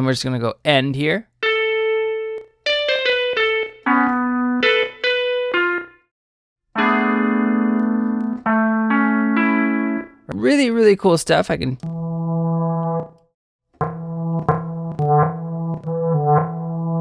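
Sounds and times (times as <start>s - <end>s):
sampled guitar notes: 1.4s - 6.1s, 6.8s - 10.2s, 13.8s - 17.0s.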